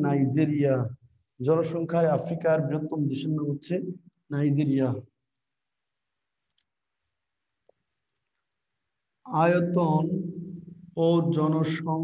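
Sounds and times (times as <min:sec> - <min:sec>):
faint clicks: 0:03.4 - 0:05.6, 0:06.4 - 0:06.8.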